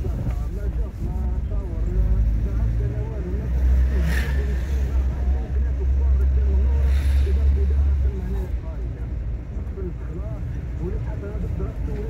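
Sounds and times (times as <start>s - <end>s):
car driving rumble inside car: 0.0s - 12.0s.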